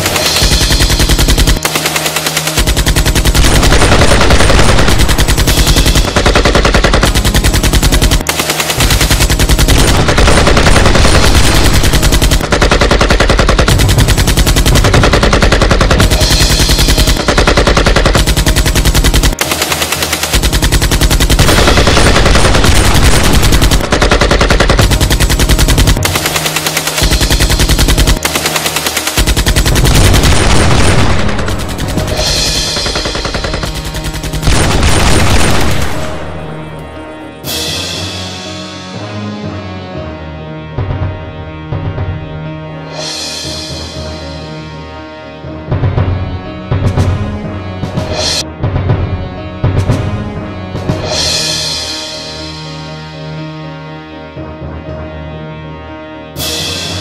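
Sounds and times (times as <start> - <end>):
rapid automatic gunfire: 0.0 - 36.9.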